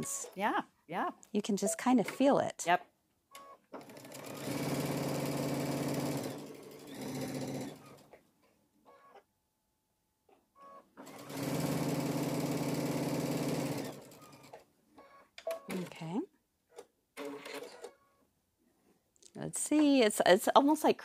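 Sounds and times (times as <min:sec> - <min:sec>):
sewing machine stitching: 0:03.8 - 0:08.2, 0:11.0 - 0:18.1.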